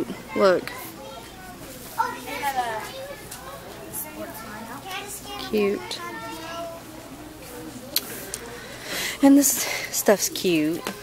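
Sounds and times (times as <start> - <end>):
child's voice: 0.0 - 3.3, 4.0 - 7.0
soft indistinct voices: 0.0 - 11.0.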